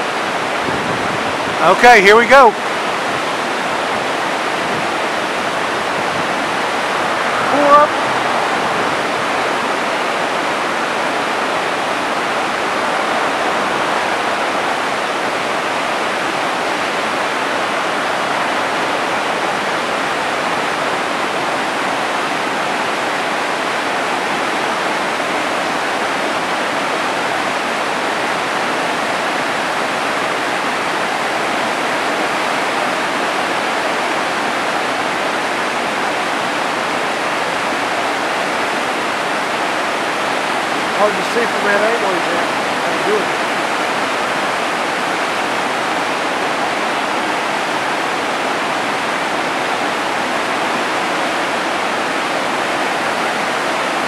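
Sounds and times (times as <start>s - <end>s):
river rapids rushing over rocks: 0.0s - 54.0s.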